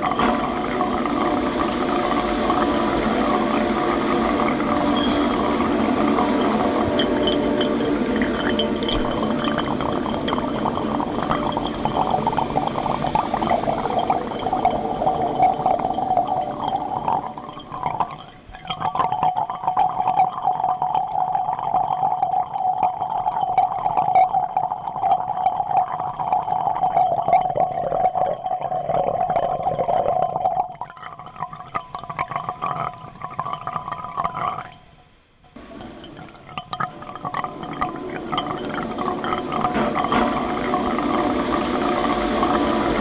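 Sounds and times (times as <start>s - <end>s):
steady mid-pitched drone: 0.0s - 18.1s, 35.6s - 43.0s
dense electronic crackling: 0.0s - 43.0s.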